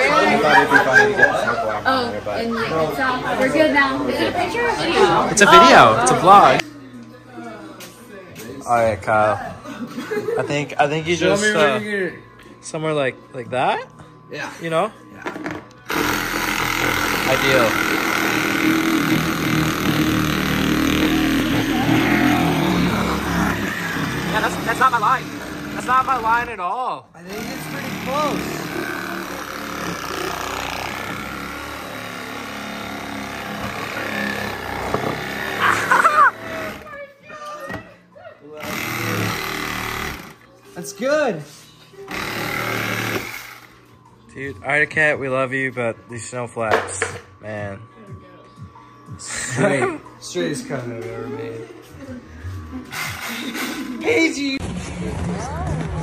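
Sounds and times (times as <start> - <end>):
reciprocating saw cutting plastic: 15.9 - 26.3, 27.3 - 36.9, 38.6 - 40.4, 42.1 - 43.7.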